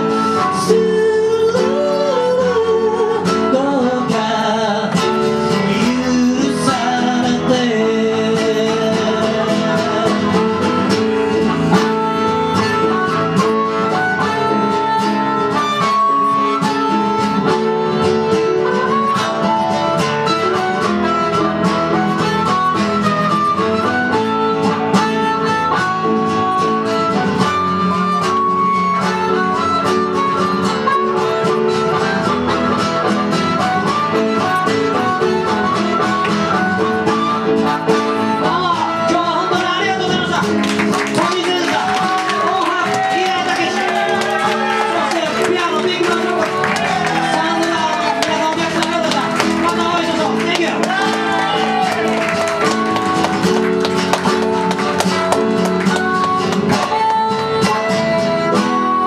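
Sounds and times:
harmonica melody: 0.0 - 59.0
strummed acoustic guitar: 0.0 - 59.0.

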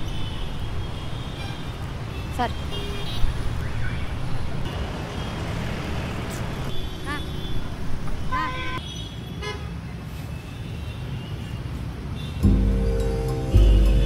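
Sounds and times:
road traffic rumble: 0.0 - 14.0
people talking on street: 6.2 - 8.8
vehicle horn toot: 13.5 - 14.0.

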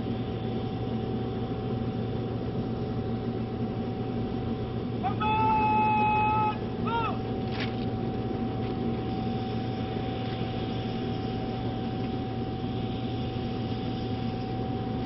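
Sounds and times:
aircraft engine drone with whine: 0.0 - 15.0.

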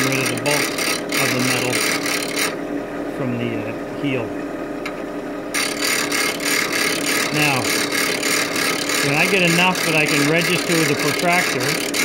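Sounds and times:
chisel grinding on wheel: 0.0 - 2.6, 5.6 - 12.0
bench grinder motor hum: 0.0 - 3.1, 5.5 - 12.0.

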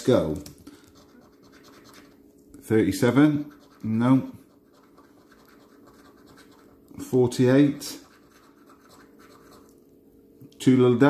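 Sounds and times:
coin scratching scratch card: 0.9 - 2.2, 3.4 - 6.8, 7.8 - 9.7.

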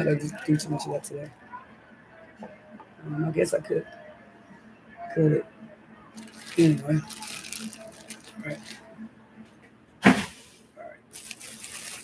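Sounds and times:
plastic bag rustling and crinkling: 6.2 - 8.9, 11.1 - 12.0.

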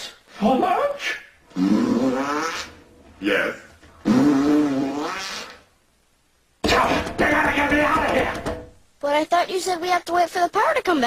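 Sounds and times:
cartoon fart sound effect: 1.5 - 2.9, 4.0 - 5.7.

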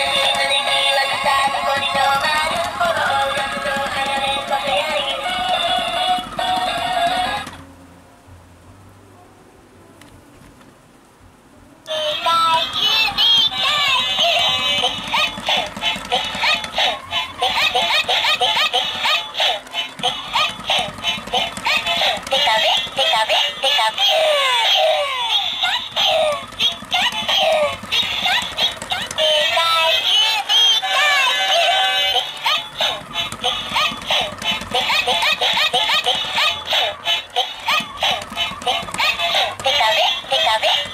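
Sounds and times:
squeaky toy voice sounds: 11.9 - 40.9.

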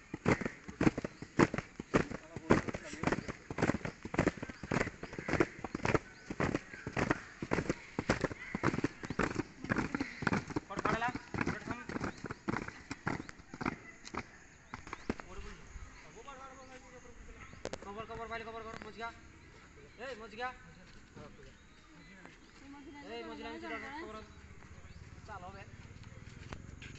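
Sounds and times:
fast low patter: 0.0 - 15.5
boots marching on ground: 0.0 - 15.6.

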